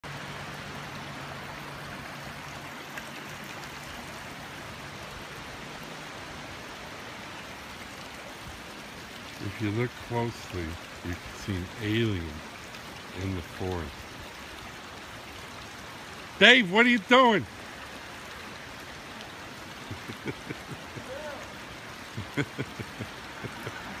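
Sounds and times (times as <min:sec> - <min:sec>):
running water rushing: 0:00.0 - 0:24.0
person laughing: 0:19.8 - 0:21.4, 0:22.1 - 0:24.0.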